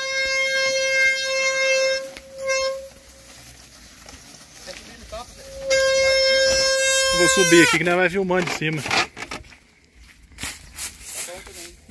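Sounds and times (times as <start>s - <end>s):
wooden cart axle whining: 0.0s - 9.5s.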